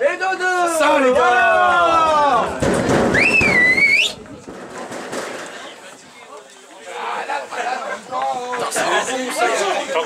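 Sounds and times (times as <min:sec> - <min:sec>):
open-air background noise: 0:00.0 - 0:10.0
shrill rising whistle: 0:03.1 - 0:04.2.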